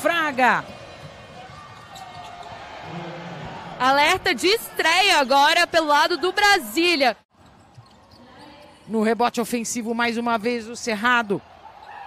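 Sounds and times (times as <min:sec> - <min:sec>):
faint arena ambience: 0:00.0 - 0:12.0.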